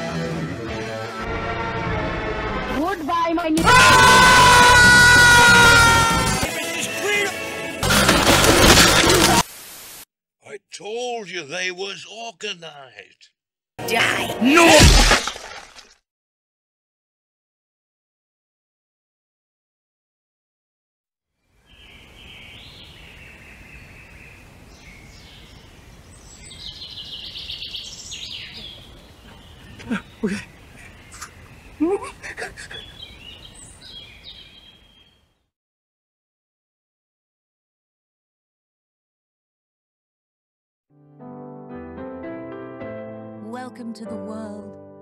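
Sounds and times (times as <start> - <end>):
music: 0.0 - 3.1, 6.1 - 8.2, 13.8 - 14.7, 40.9 - 45.0
man screaming: 3.6 - 7.3, 14.4 - 14.9.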